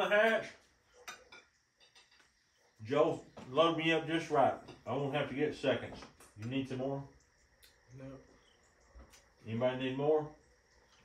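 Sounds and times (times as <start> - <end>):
forks clinking on plates: 1.0 - 2.3.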